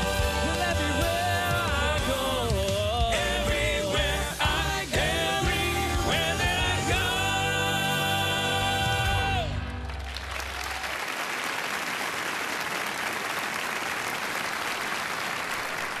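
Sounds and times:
male vocal quartet singing: 0.0 - 9.9
audience applauding: 9.1 - 16.0.

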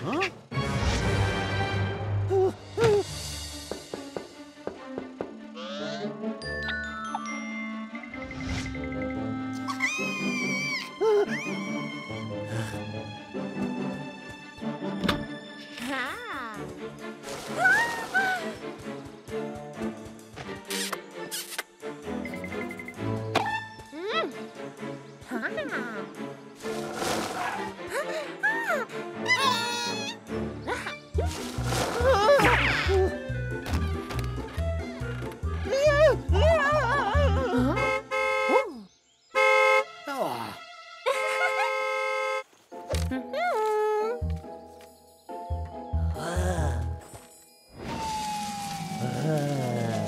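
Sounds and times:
cartoon background music: 0.0 - 50.0
high squeal: 47.8 - 49.2.

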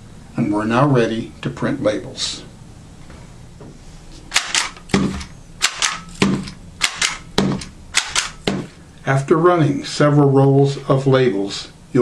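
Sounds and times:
labeling gun clicks: 4.3 - 5.0, 5.6 - 8.4.

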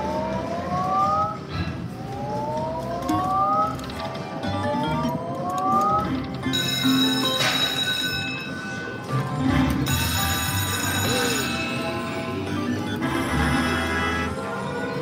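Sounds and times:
slot machine electronic glides: 0.0 - 15.0.

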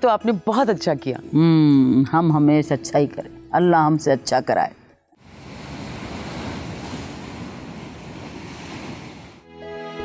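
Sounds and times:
ocean waves breaking on rocks: 5.2 - 9.4.

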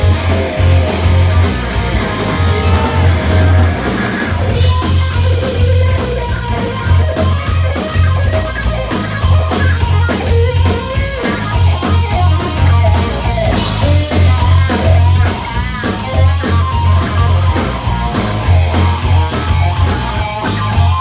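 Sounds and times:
bass guitar: 0.0 - 21.0
drums: 0.0 - 21.0
electric guitar lead: 0.0 - 21.0
cymbal beat: 1.8 - 4.7.

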